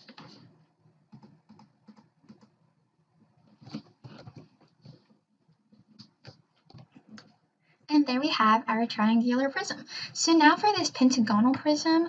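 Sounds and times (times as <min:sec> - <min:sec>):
computer clicks and taps: 0:01.1 - 0:02.6.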